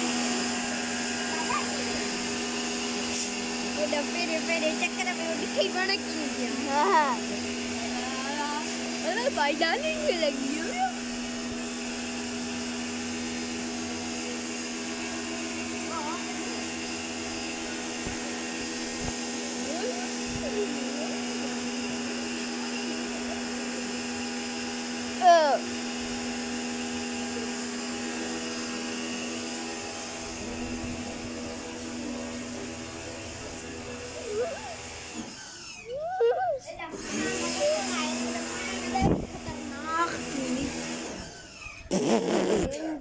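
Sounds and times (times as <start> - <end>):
pressure washer motor humming: 0.0 - 42.5.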